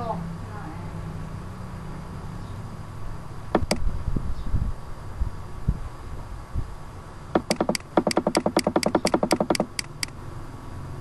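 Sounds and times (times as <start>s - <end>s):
mouse scroll wheel clicking: 7.4s - 10.1s.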